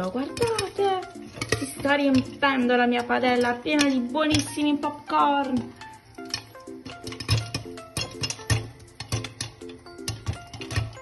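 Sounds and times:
popcorn kernels popping: 0.0 - 11.0
upbeat background music: 0.0 - 11.0.

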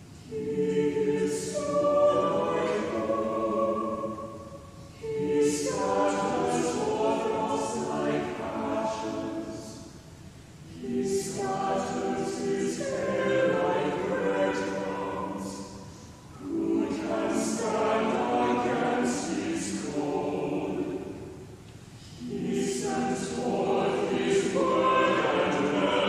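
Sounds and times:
choir singing: 0.0 - 10.0, 10.6 - 26.0.

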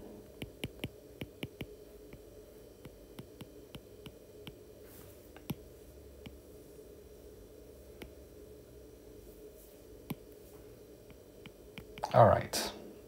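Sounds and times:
low steady hum: 0.0 - 13.0
stylus tapping on glass screen: 0.4 - 2.2.

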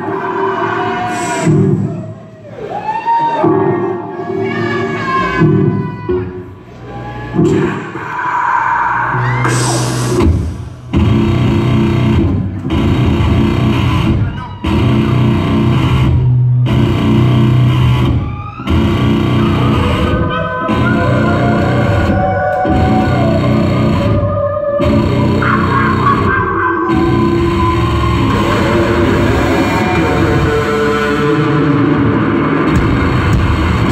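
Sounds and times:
punk band playing: 9.4 - 33.9.

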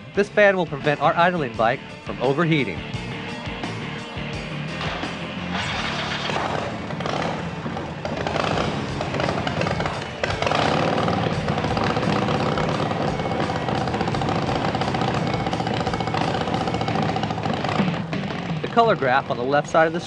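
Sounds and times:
background music with steady beat: 0.0 - 20.0
motorcycle engine idling: 0.0 - 20.0.

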